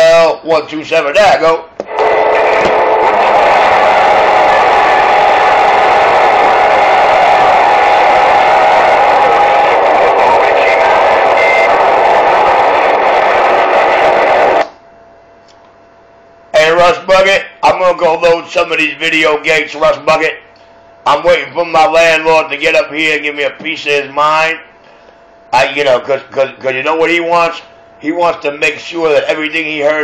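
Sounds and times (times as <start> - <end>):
radio static hiss: 1.9 - 14.7.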